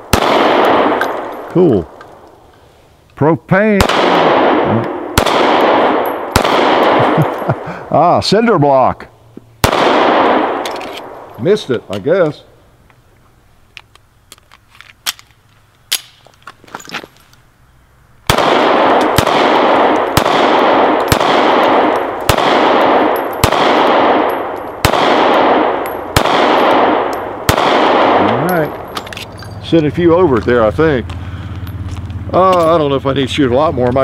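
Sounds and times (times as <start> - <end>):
pistol shots with echo: 0.0 - 2.0, 3.7 - 7.6, 9.6 - 11.6, 18.3 - 29.1.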